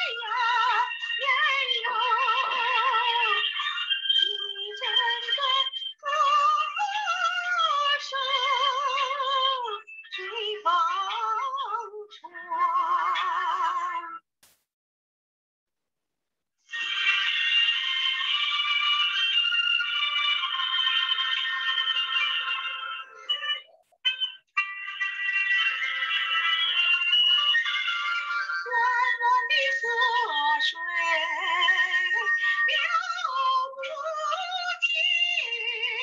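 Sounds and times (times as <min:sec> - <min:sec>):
thin karaoke backing music: 0:00.0 - 0:14.2, 0:16.8 - 0:36.0
woman singing: 0:00.0 - 0:14.2, 0:27.5 - 0:36.0.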